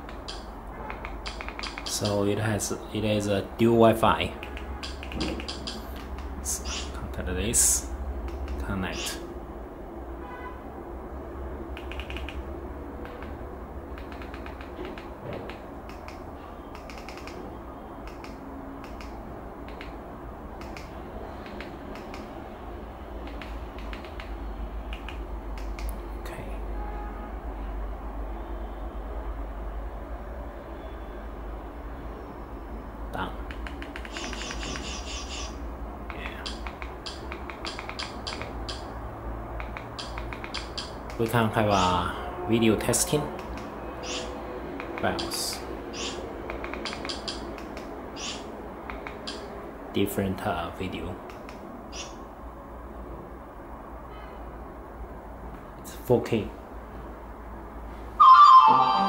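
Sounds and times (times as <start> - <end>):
keypress clicks: 0.0 - 2.0, 4.4 - 6.3, 11.8 - 12.4, 14.0 - 17.4, 18.0 - 19.1, 19.7 - 20.0, 20.6 - 22.3, 23.2 - 24.3, 24.9 - 26.0, 33.4 - 35.0, 36.1 - 38.8, 39.6 - 41.2, 46.0 - 49.4.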